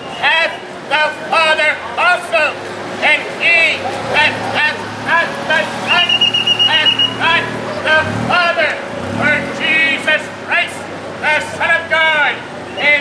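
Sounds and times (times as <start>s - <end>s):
man preaching loudly: 0.2s - 13.0s
auto rickshaw engine revving: 0.6s - 13.0s
steady high tone: 3.2s - 12.2s.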